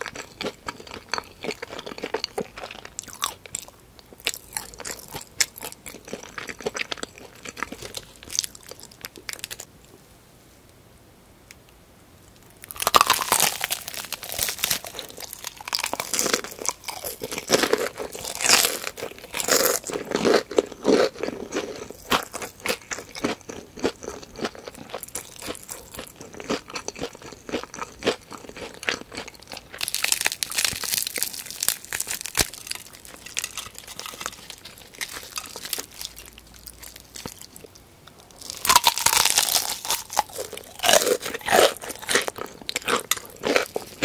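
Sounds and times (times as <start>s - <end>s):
chewing crispy fried chicken: 0.0s - 9.7s, 12.4s - 44.0s.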